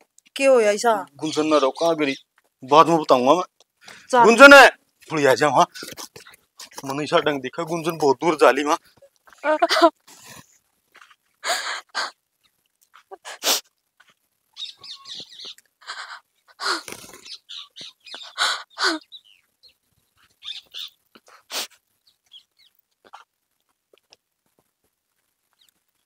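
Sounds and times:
woman sobbing and wailing: 9.5 - 10.0, 11.4 - 12.2, 13.0 - 13.5, 15.8 - 16.9, 18.2 - 19.0.

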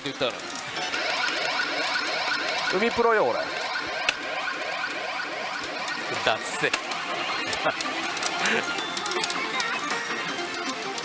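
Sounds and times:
pachinko electronic falling tones: 0.0 - 11.0
pachinko hall din: 0.0 - 11.0.

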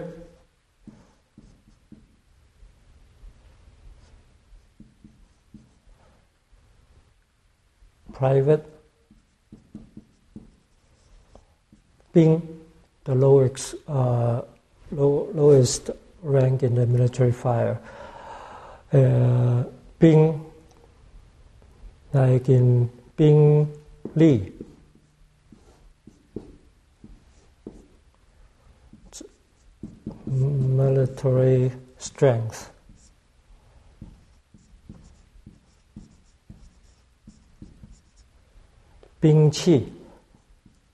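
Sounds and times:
marker writing on whiteboard: 0.8 - 2.3, 3.3 - 6.2, 8.1 - 12.5, 23.6 - 38.4, 40.2 - 40.9.

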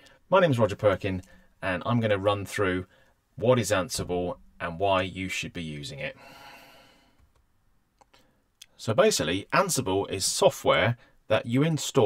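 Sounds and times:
man exhaling: 6.2 - 7.2.

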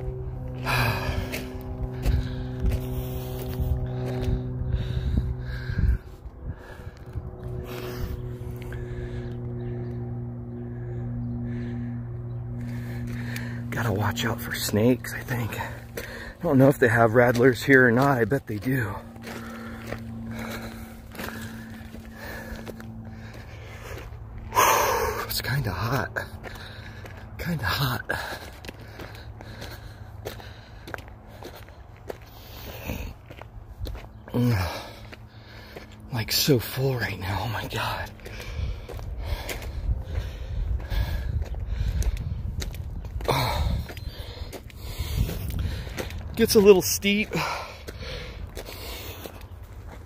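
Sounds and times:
low rumble on microphone: 0.0 - 27.4, 37.4 - 46.6
footsteps crunching on gravel: 0.0 - 50.0
man breathing heavily: 0.0 - 50.0.

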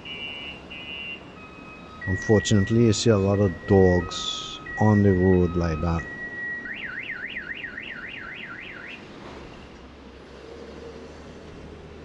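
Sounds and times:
passing car noise: 0.0 - 12.0.

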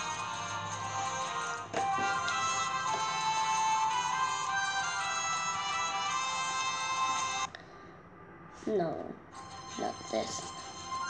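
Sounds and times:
chime-like background music: 0.0 - 7.5, 9.4 - 11.0.

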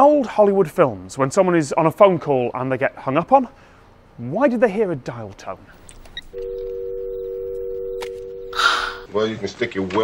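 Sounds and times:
telephone dial tone: 6.3 - 9.1.

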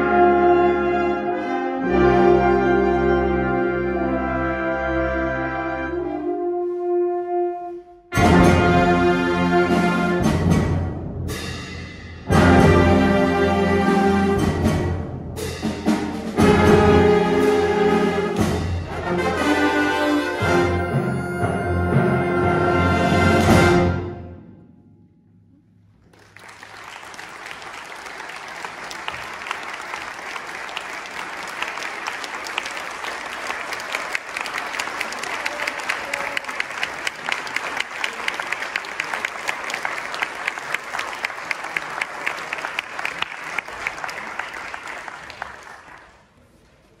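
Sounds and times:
audience applauding: 26.0 - 46.5.

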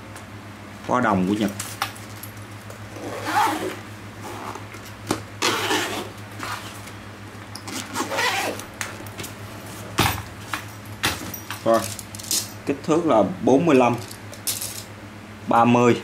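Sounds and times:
metal zip pulls clinking: 7.5 - 8.7.

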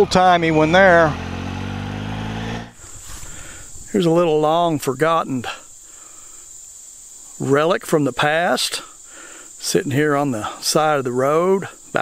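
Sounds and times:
motorcycle engine running: 0.0 - 2.8
crickets chirping: 2.7 - 12.0.

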